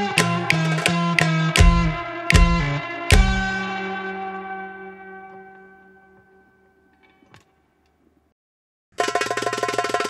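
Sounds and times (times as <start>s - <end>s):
amplified plucked strings chord ringing: 0.0s - 7.1s.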